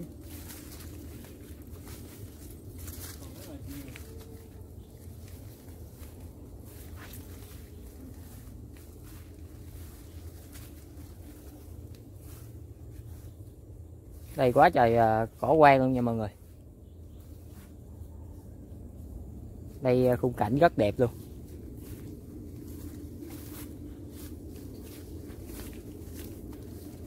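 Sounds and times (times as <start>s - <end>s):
footsteps: 0.0s - 14.4s, 19.7s - 27.0s
steady low rumble: 0.0s - 27.0s
tall grass rustling: 0.0s - 27.0s.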